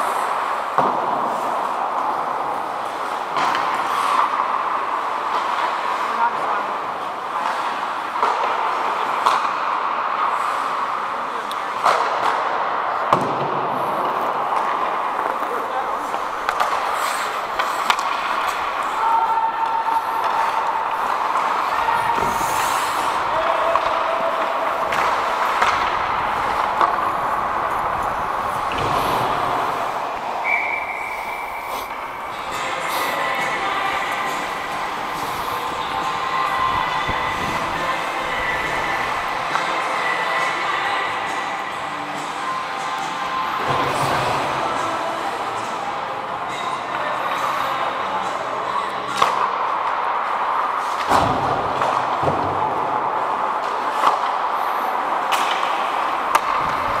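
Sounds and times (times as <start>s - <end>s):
skate blades scraping ice: 0.0s - 9.6s, 13.8s - 41.9s
hockey sticks and puck clacking: 0.0s - 57.0s.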